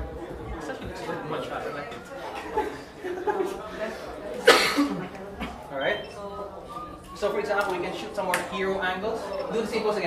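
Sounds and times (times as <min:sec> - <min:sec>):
quiet group talk: 0:00.0 - 0:10.0
loud cough: 0:04.4 - 0:05.6.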